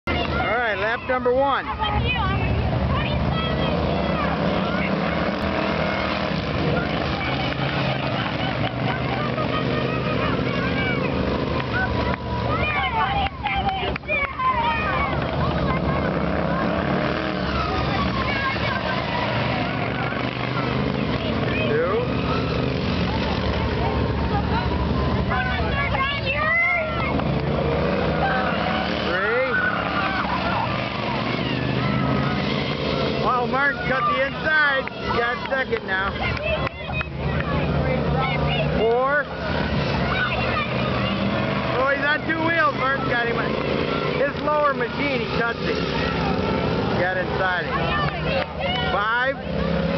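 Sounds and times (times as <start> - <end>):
racing lawn mower engines: 0.0 - 49.9
spectators' voices: 0.0 - 49.9.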